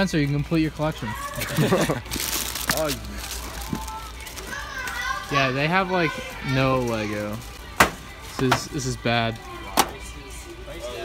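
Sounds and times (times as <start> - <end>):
low hum of shop ambience: 0.0 - 11.0
indistinct background voices: 1.7 - 11.0.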